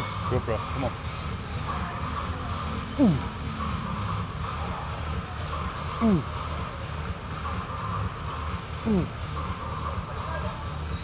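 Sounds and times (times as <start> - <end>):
background music with beat: 0.0 - 11.0
man grunting: 3.0 - 3.4, 6.0 - 6.3, 8.8 - 9.1.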